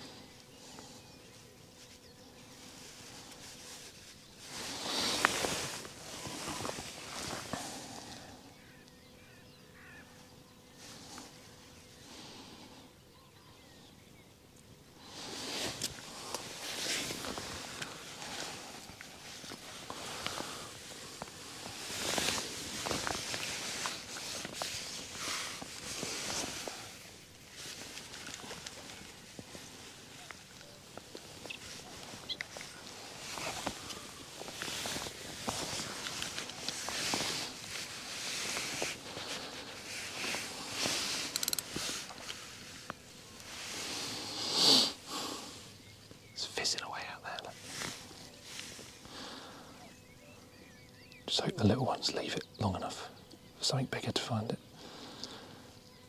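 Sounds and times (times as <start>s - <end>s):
rustling and handling noise: 0.0s - 8.9s, 14.5s - 44.8s, 45.6s - 49.8s.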